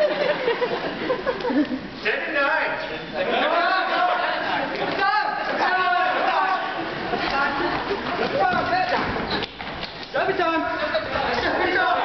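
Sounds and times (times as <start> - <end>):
voices talking and calling out: 2.0 - 12.0.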